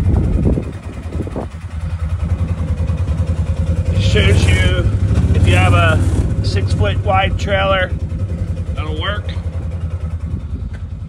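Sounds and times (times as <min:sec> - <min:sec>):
utility vehicle engine idling: 0:00.0 - 0:11.0.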